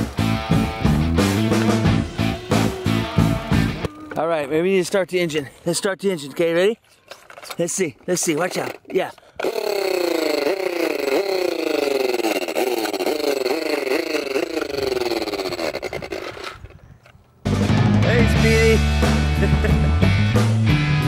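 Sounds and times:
rock music: 0:00.0 - 0:04.1, 0:17.5 - 0:21.0
toy motorcycle engine sound: 0:01.6 - 0:04.2, 0:08.2 - 0:17.1.

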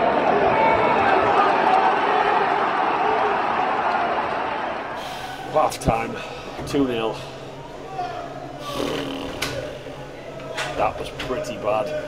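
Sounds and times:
murmur of voices: 0:04.8 - 0:12.0.

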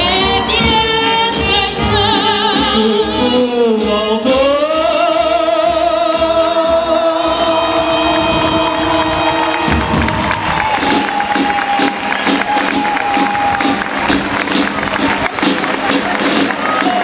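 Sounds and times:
march music with sung notes: 0:00.0 - 0:17.0
crowd cheering: 0:07.6 - 0:17.0
rhythmic clapping: 0:08.1 - 0:17.0.

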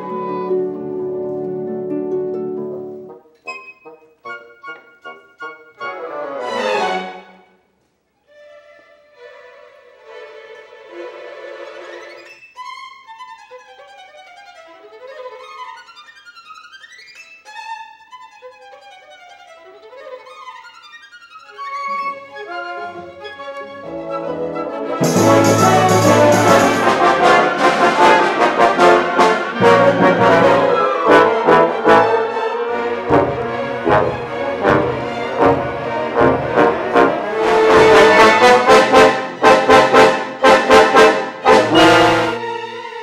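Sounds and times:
orchestra playing: 0:00.0 - 0:07.4, 0:21.9 - 0:43.0
solo violin fast scales: 0:08.3 - 0:43.0
plucked harp notes: 0:25.0 - 0:27.6
harp glissando: 0:25.0 - 0:31.0.

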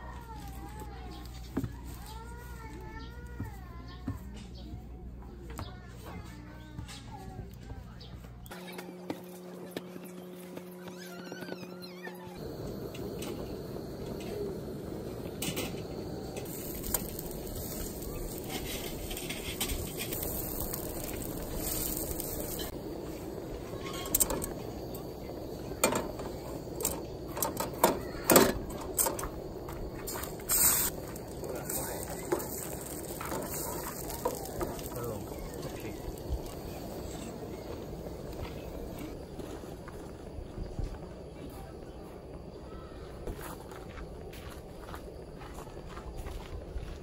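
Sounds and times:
food sizzling in a pan: 0:12.4 - 0:39.2
eggs cracking into pan: 0:16.4 - 0:22.8, 0:23.8 - 0:37.3
wooden spatula stirring: 0:30.0 - 0:35.0.

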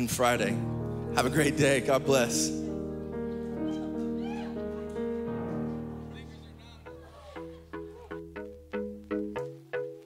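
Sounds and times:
live band playing slow chords: 0:00.0 - 0:10.0.

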